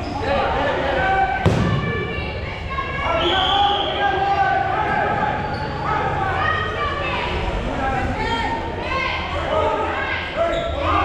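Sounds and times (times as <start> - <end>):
players shouting: 0.2 - 7.4
dodgeball hitting: 1.4 - 2.4.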